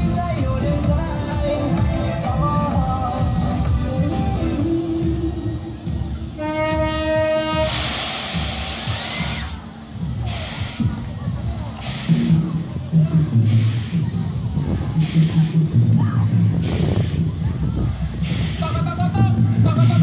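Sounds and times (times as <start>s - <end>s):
low rumble: 0.0s - 20.0s
music over sound system: 0.0s - 20.0s
horn steady note: 6.2s - 9.0s
loud hiss of smoke jet: 7.2s - 11.0s, 11.8s - 12.5s, 13.4s - 14.2s, 15.0s - 15.6s, 16.6s - 17.4s, 18.1s - 18.8s.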